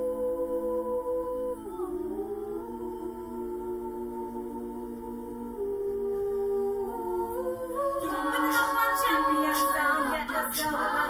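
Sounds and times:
women's choir singing a cappella: 0.0s - 11.0s.

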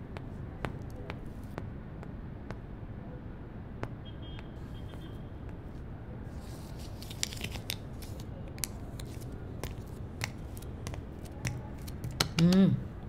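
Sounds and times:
newspaper rustling: 6.3s - 12.2s.

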